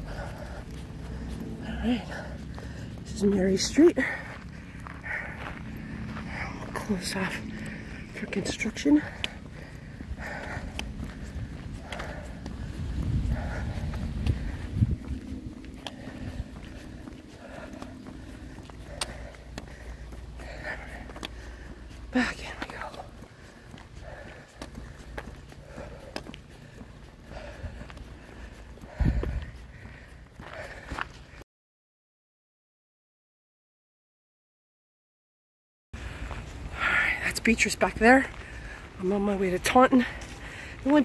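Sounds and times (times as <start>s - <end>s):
footsteps on trail: 0.0s - 31.4s, 36.0s - 41.0s
low rumble: 0.0s - 31.4s.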